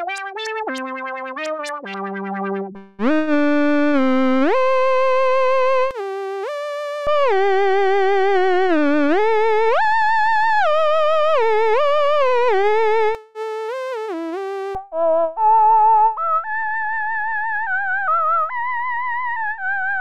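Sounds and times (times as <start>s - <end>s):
synthesizer theremin-like gliding tone: 0.0s - 3.4s.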